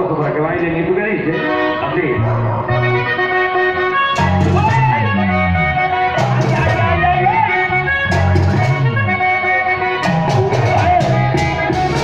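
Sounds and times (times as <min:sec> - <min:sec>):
accordion melody: 0:01.2 - 0:12.0
repeating bass line: 0:01.3 - 0:12.0
steady percussion: 0:04.2 - 0:09.4, 0:10.0 - 0:12.0.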